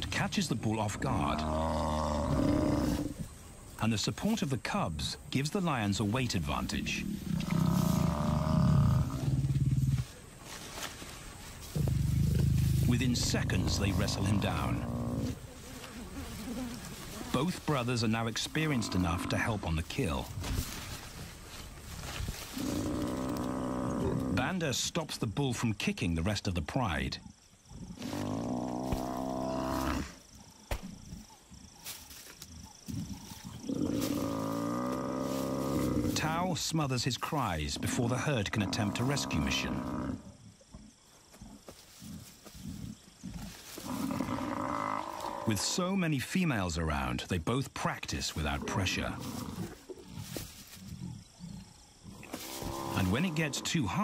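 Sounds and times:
lions growling: 0.0s - 3.4s, 6.2s - 10.3s, 11.6s - 19.7s, 22.5s - 24.4s, 27.6s - 31.8s, 32.6s - 36.2s, 48.4s - 54.0s.

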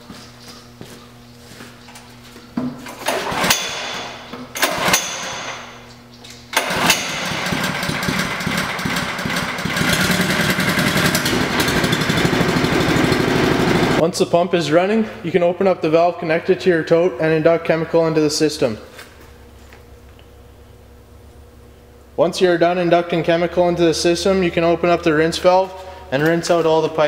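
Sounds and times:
small pump engine starting and running: 2.8s - 5.8s, 6.5s - 14.0s.

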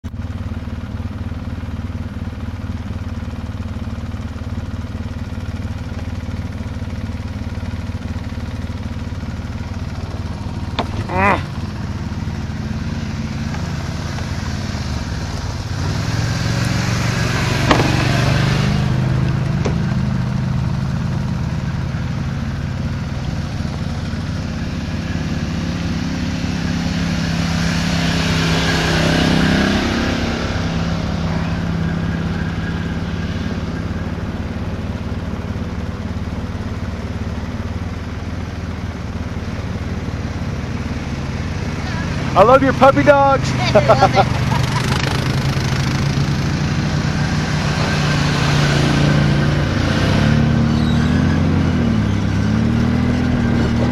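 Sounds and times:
atv engine idling: 0.0s - 48.0s
passing atv engines: 0.0s - 53.9s.

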